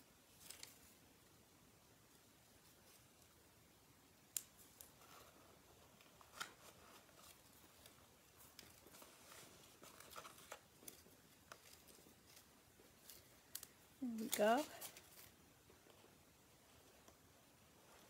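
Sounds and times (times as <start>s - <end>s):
paper rustling: 0.3s - 1.0s, 4.6s - 16.0s.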